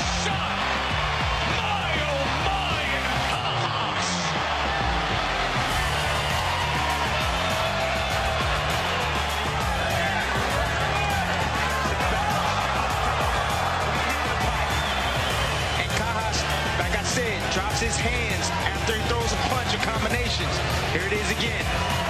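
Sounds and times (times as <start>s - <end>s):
background music with bass line: 0.0s - 22.0s
fight broadcast noise: 0.0s - 22.0s.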